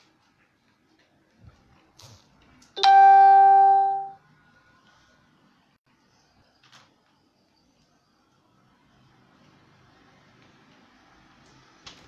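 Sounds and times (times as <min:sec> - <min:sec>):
loud chime tone: 0:02.8 - 0:04.2.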